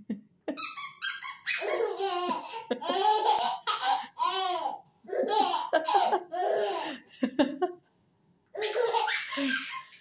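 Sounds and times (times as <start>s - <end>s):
baby laughing: 0.6s - 7.0s, 8.6s - 10.0s.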